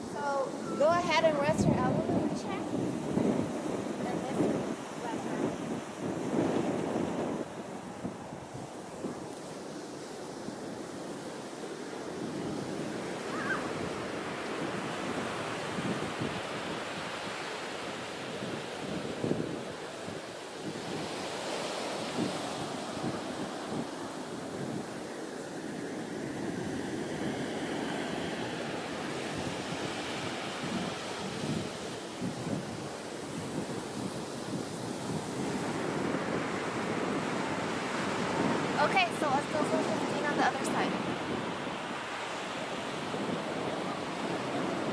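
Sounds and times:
ocean surf: 0.0s - 44.9s
wind buffeting microphone: 0.0s - 44.9s.

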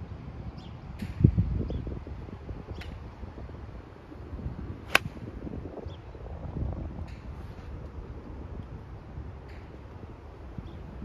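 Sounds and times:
wind rumble on microphone: 0.0s - 11.0s
golf club striking ball: 4.9s - 5.3s.

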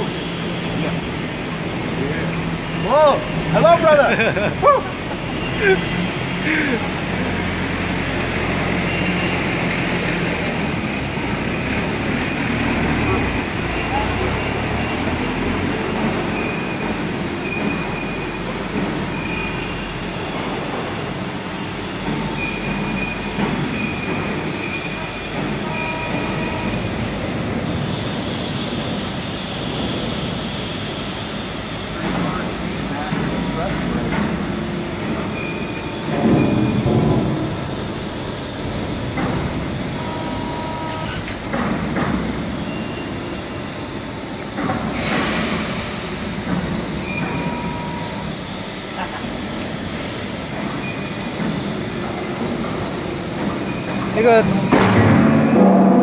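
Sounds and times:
machinery noise in echoing hall: 0.0s - 56.0s
short whining tones: 40.0s - 41.6s
loud knocks: 54.6s - 56.0s.

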